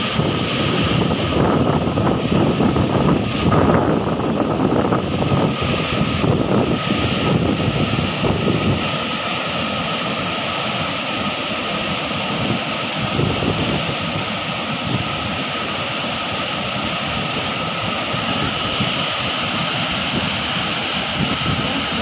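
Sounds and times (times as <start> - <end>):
waterfall rushing: 0.0 - 22.0
wind buffeting microphone: 0.0 - 22.0.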